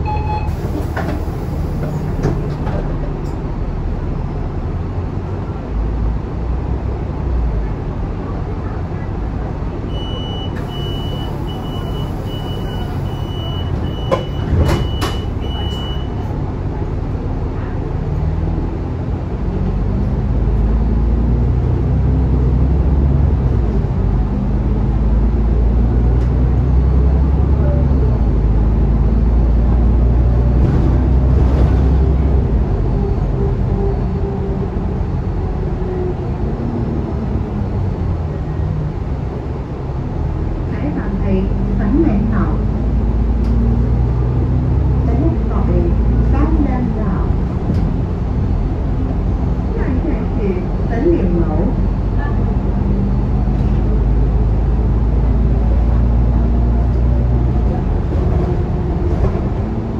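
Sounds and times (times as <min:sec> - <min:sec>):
short high beeps: 0:00.0 - 0:00.6
bus diesel engine: 0:00.0 - 0:59.9.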